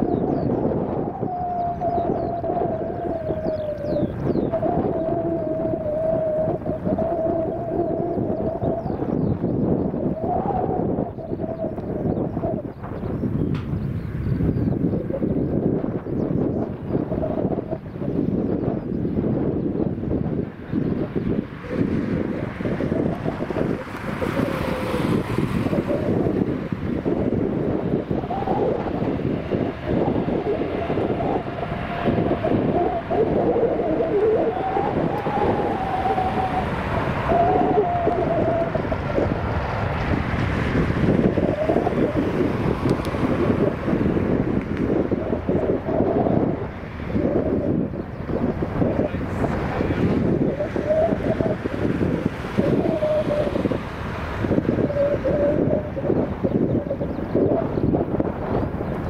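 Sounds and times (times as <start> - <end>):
jet engines rumbling: 0.0 - 59.0
wind on microphone: 0.0 - 59.0.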